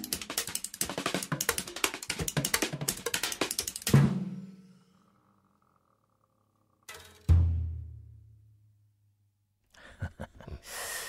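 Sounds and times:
sharp intake of breath: 10.6s - 11.0s.

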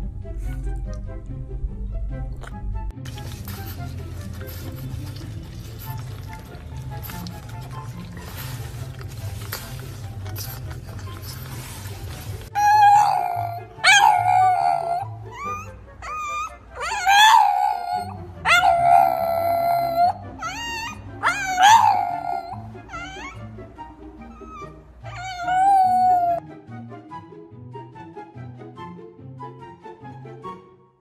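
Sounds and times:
dog howling: 10.9s - 23.6s, 24.2s - 26.4s.

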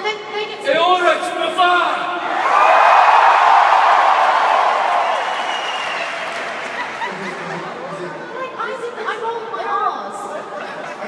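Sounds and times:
audience chatter in a hall: 0.0s - 11.0s.

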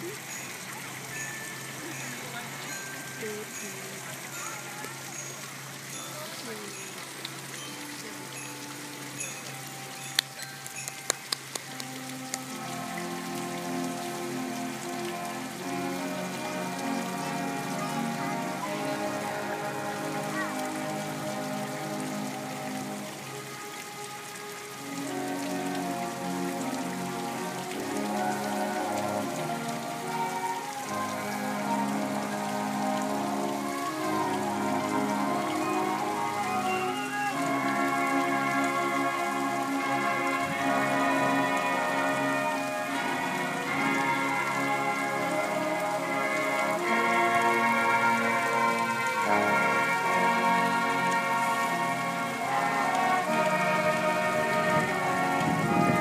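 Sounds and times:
steady hiss: 0.0s - 56.0s
marching band brass chords: 11.7s - 56.0s.

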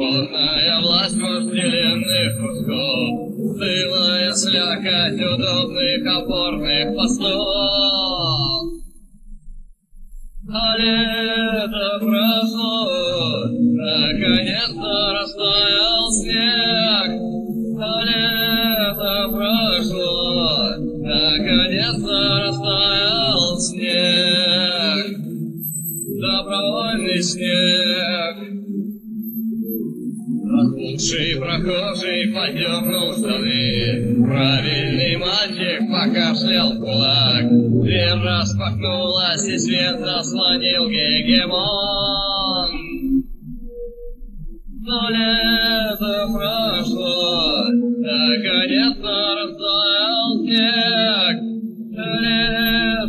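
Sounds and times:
a cappella singing: 0.0s - 8.9s, 10.4s - 25.4s, 26.1s - 28.8s, 30.4s - 43.3s, 44.7s - 53.0s.

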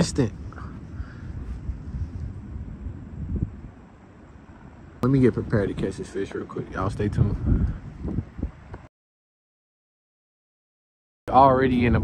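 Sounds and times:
wind buffeting microphone: 0.0s - 8.9s, 11.3s - 12.0s.

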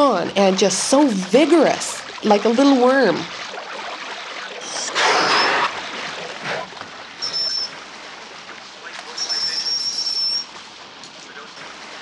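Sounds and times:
water splashing: 0.0s - 12.0s
beluga whistles: 4.6s - 5.7s, 7.2s - 7.7s.

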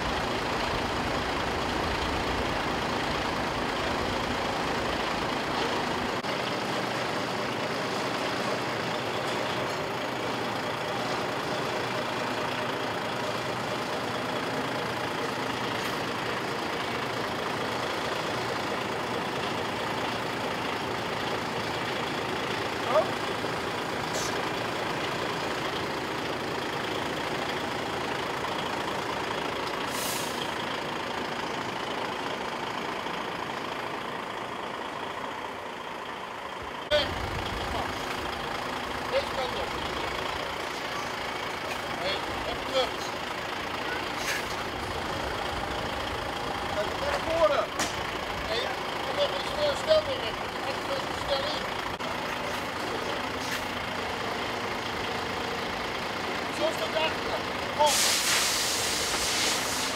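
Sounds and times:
diesel truck engine running: 0.0s - 59.9s
air hiss: 29.9s - 30.4s, 57.8s - 59.9s.

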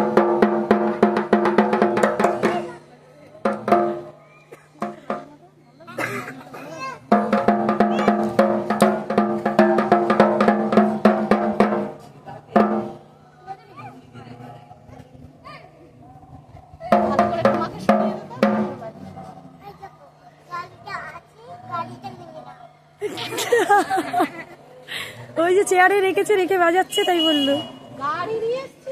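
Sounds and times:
barrel drum beaten with sticks: 0.0s - 4.2s, 4.8s - 5.3s, 7.1s - 13.1s, 16.9s - 19.0s.

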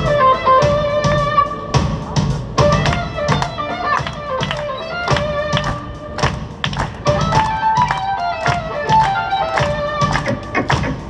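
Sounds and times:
electric violin melody: 0.0s - 1.8s, 2.6s - 10.6s
rhythmic rock backing: 0.0s - 11.0s.

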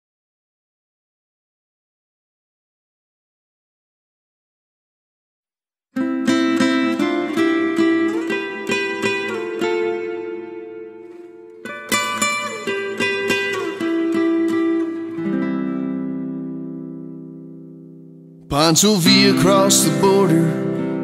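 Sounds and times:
acoustic guitar music: 6.0s - 21.0s.

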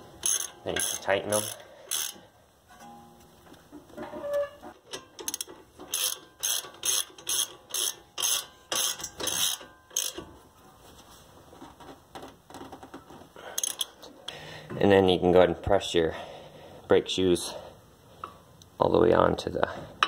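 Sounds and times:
socket ratchet clicking: 5.2s - 10.2s.

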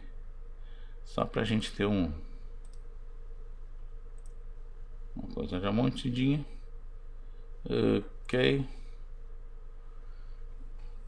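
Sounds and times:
low electrical hum: 0.0s - 11.0s
computer mouse click: 2.6s - 2.9s, 4.1s - 4.4s.

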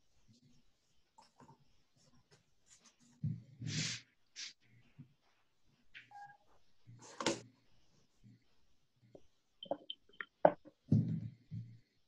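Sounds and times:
two-tone electronic beep: 9.6s - 10.3s.

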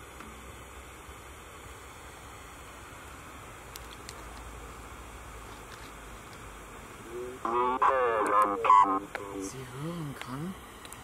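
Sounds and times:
electronic voice speaking: 7.0s - 10.6s.

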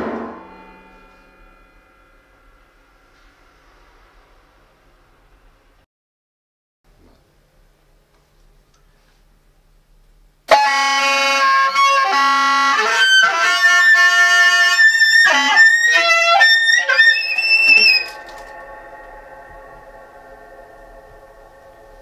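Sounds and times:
piano strings ringing: 0.0s - 4.6s, 15.1s - 22.0s
soprano saxophone fast run: 10.7s - 18.4s.

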